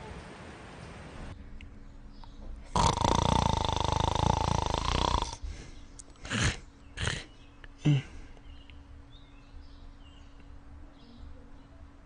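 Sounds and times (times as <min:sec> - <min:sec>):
man snoring: 0:02.7 - 0:05.4.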